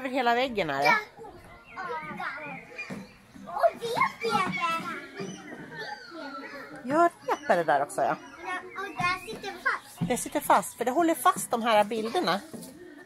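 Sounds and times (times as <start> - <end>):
young children chattering: 0.0 - 13.0.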